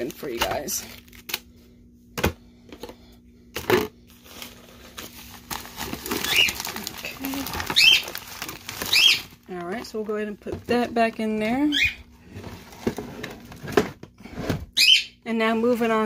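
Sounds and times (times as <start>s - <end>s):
items rustling: 0.0s - 14.7s
plastic bags crinkling: 3.5s - 11.8s
pet bird calling: 8.8s - 9.3s.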